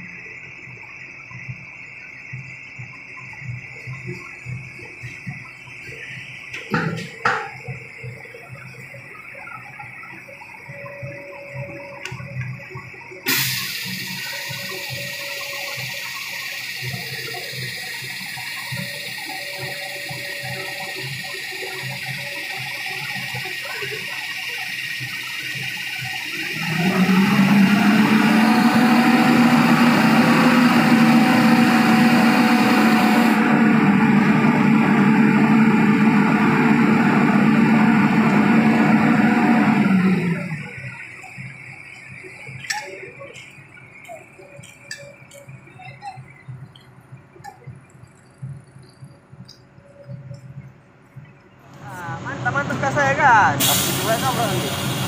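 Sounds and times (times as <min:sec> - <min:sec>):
diesel engine drone: 0:00.0 - 0:55.0
steady hissing rush: 0:51.8 - 0:55.0.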